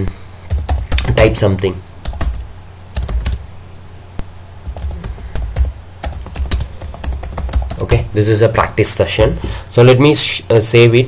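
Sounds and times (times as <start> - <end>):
computer keyboard typing: 0.5 - 1.3, 2.0 - 3.4, 4.6 - 8.0.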